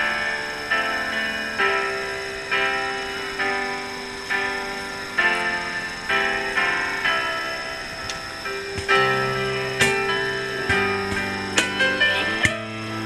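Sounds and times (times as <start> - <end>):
plucked string chords: 7.9 - 13.0.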